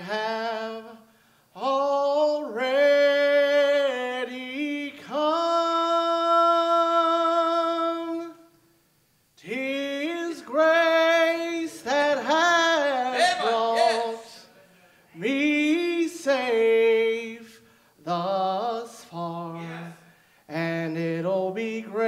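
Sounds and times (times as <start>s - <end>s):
man singing unaccompanied: 0.0s - 8.5s, 9.4s - 14.5s, 15.1s - 22.0s.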